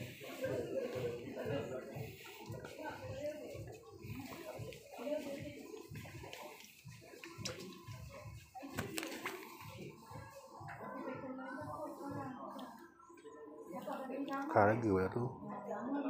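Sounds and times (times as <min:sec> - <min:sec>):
people talking indistinctly: 0:00.0 - 0:16.0.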